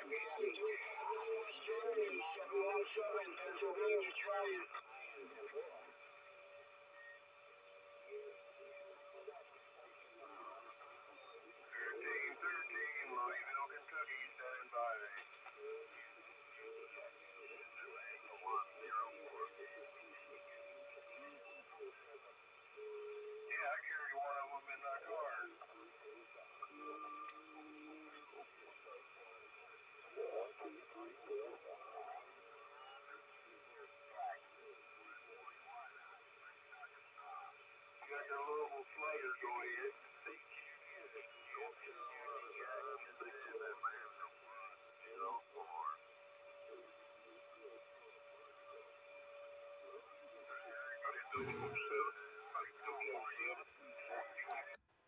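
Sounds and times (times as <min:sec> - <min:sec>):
garbled radio speech: 0:00.0 - 0:54.8
radio band hiss: 0:00.0 - 0:54.8.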